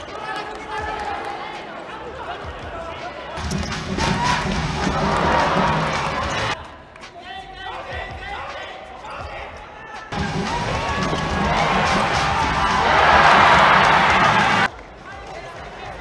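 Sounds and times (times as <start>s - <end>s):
loud crowd noise: 0.0s - 16.0s.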